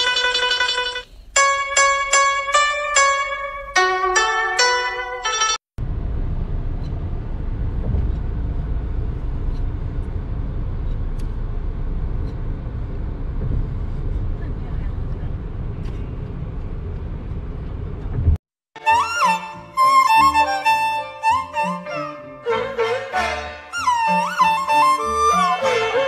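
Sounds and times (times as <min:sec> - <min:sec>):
car cabin rumble: 0:05.8 - 0:18.4.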